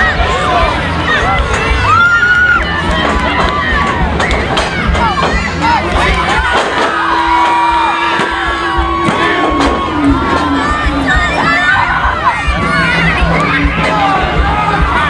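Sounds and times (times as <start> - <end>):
crowd cheering and shouting: 0.0 - 15.0.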